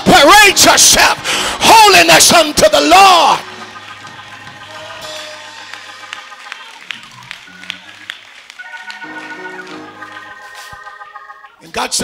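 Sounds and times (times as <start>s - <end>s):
organ music sustained chords: 0.0s - 12.0s.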